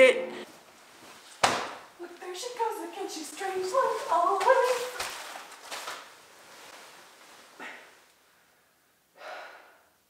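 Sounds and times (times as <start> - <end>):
bean bag fabric rustling: 3.6 - 7.6.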